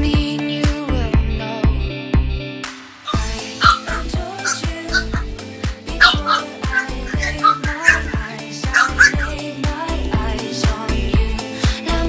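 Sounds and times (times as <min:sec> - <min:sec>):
pop song with steady beat: 0:00.0 - 0:12.0
puppies yipping and barking: 0:03.1 - 0:09.4.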